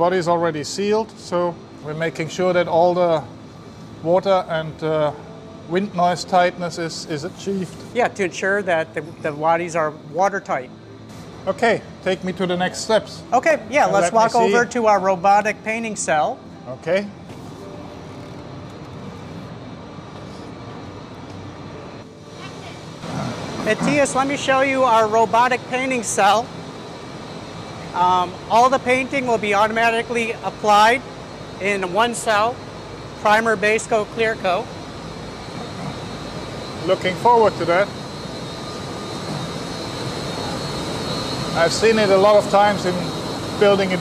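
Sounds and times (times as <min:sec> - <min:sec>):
factory rushing hum: 0:00.0 - 0:44.0
thin high-pitched whine: 0:21.7 - 0:44.0.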